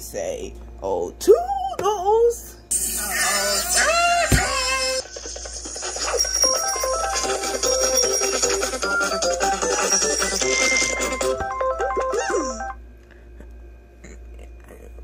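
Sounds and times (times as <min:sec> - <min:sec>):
bright cartoon music: 0:03.4 - 0:12.8.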